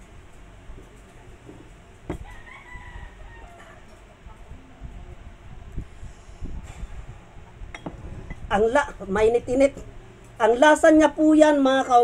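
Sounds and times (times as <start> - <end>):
rooster crowing: 2.1 - 4.0
glass mug set on table: 7.7 - 8.4.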